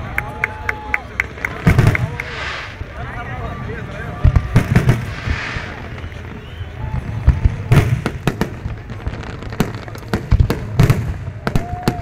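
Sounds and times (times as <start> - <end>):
fireworks bangs: 1.5 - 12.0
low rumble: 1.7 - 7.7.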